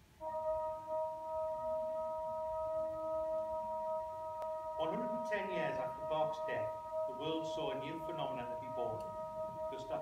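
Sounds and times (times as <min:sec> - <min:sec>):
sustained bell-like chord: 0:00.0 - 0:10.0
person speaking: 0:04.8 - 0:10.0.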